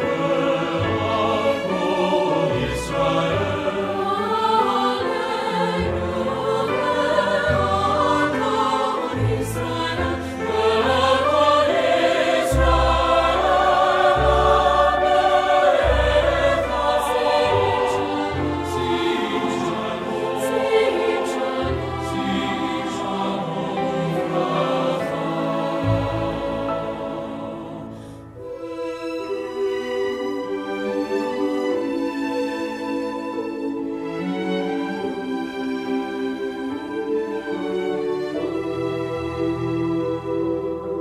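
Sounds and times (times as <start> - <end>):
choir singing: 0.0 - 41.0
instrumental accompaniment: 0.0 - 41.0.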